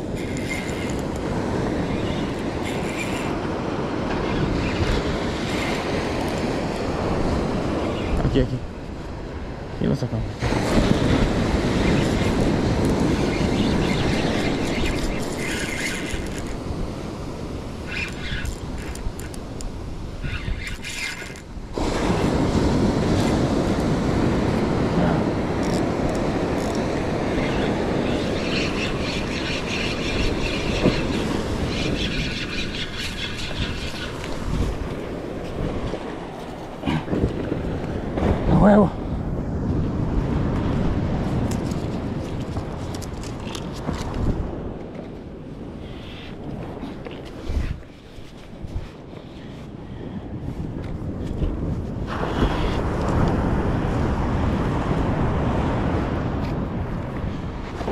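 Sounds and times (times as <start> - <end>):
fishing reel whirring: 0.0 - 3.5, 11.8 - 16.8, 17.4 - 21.6, 25.6 - 35.0
wind on microphone: 0.0 - 57.9.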